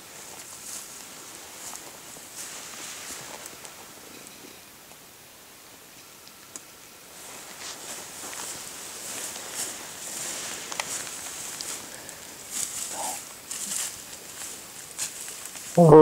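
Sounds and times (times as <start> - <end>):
footsteps crunching dry leaves: 0.0 - 3.9, 7.1 - 15.9
man exclaiming: 15.8 - 16.0.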